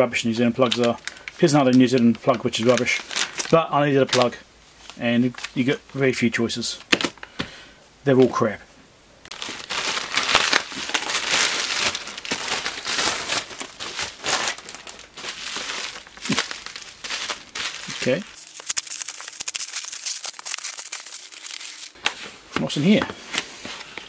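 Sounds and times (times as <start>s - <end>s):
plastic bag and bubble wrap crinkling: 0.4s - 5.8s, 9.3s - 23.0s.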